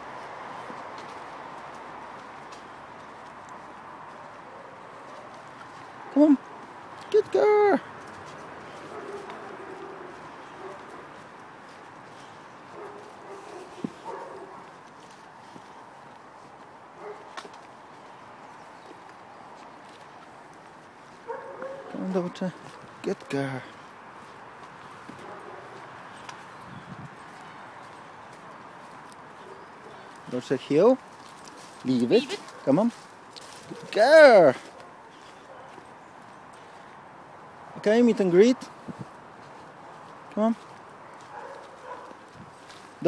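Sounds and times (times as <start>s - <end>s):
footsteps rustling dry leaves: 0.0s - 43.0s.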